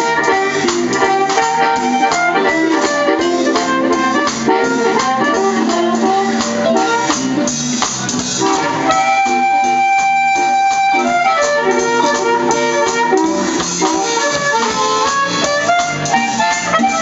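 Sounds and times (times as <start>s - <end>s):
blues harmonica: 0.0s - 17.0s
live band playing: 0.0s - 17.0s.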